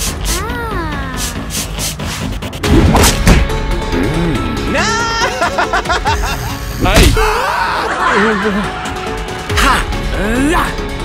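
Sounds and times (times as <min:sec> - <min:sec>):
background music: 0:00.0 - 0:11.0
slap-like hit: 0:02.7 - 0:03.5.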